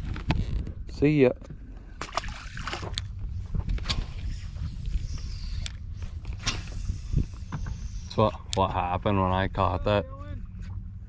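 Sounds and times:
wind rumble on microphone: 0:00.0 - 0:11.0
fishing reel clicks: 0:04.9 - 0:05.8.

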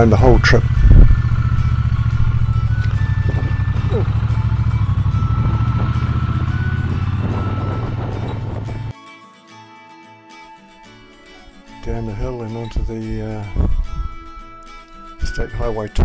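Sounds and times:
motorcycle engine running: 0:00.0 - 0:08.9
faint background music: 0:11.2 - 0:16.0.

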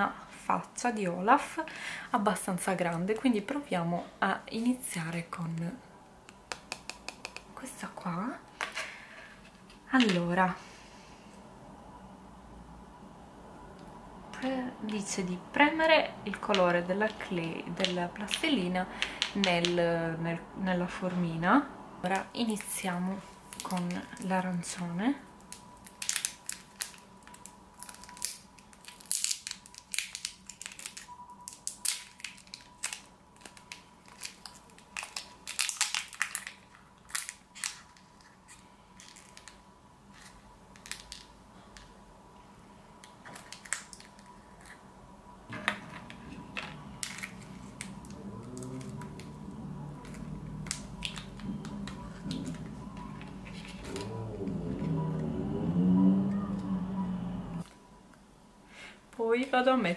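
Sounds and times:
foil wrapper crinkling: 0:25.5 - 0:39.6
low rumble with wavering pitch: 0:45.6 - 0:57.7.

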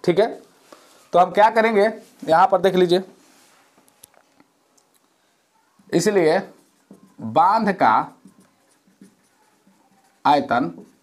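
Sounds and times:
marker scratching on whiteboard: 0:05.8 - 0:11.0.

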